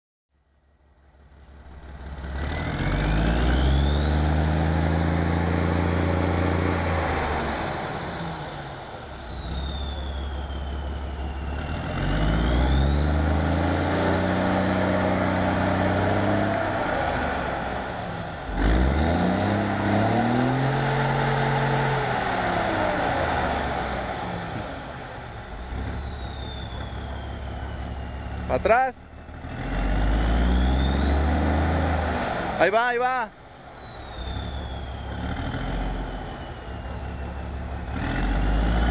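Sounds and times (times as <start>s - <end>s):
diesel bus engine revving: 1.6s - 33.1s, 33.7s - 38.9s
high whistle: 7.6s - 17.0s, 19.4s - 28.6s, 30.4s - 37.7s.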